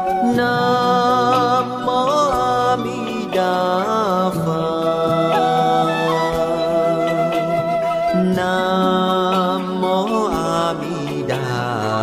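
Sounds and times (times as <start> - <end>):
background music: 0.0 - 12.0
devotional chant sung: 0.1 - 12.0.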